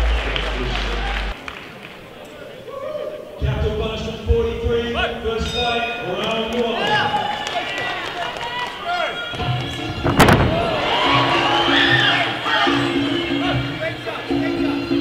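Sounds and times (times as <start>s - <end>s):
crowd shouting: 6.8s - 13.7s
background music: 9.1s - 15.0s
sharp impact: 10.0s - 11.1s.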